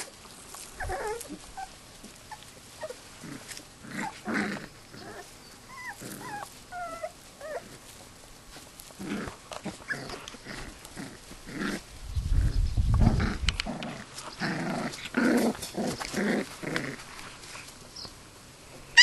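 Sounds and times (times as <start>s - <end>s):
puppies growling: 0.0s - 8.0s, 8.9s - 17.7s
puppies whining: 0.7s - 3.1s, 4.8s - 7.8s.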